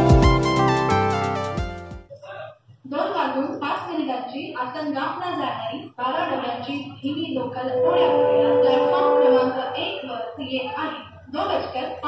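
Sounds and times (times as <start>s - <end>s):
woman's announcement over loudspeaker: 2.9s - 12.0s.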